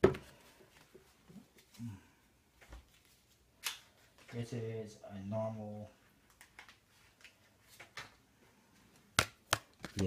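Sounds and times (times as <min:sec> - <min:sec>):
playing cards rustling: 0:06.1 - 0:08.2, 0:08.9 - 0:10.0.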